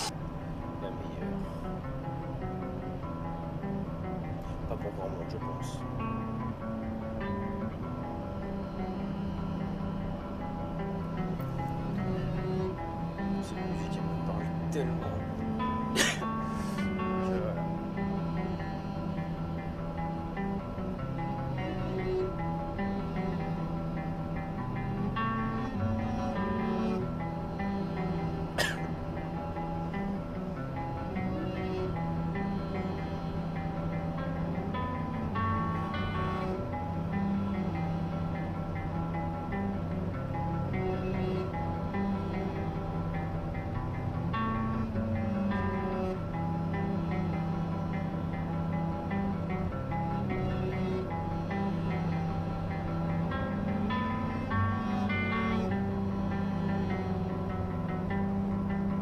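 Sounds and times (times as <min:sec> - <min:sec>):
guitar music on car stereo: 0:00.0 - 0:59.0.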